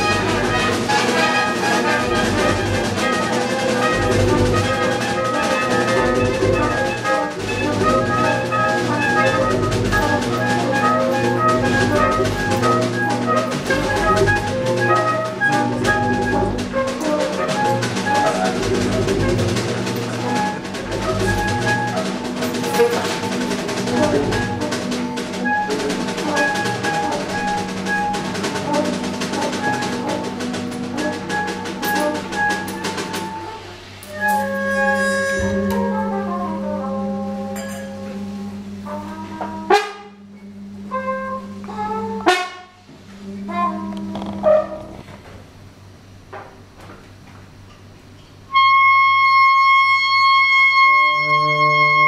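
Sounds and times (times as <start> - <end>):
loud ensemble hits: 0.0 - 33.5, 34.8 - 45.9
horns holding sustained chords: 0.0 - 46.2, 48.5 - 52.0
busy drums and cymbals: 0.0 - 52.0
jazz big band playing: 0.0 - 52.0.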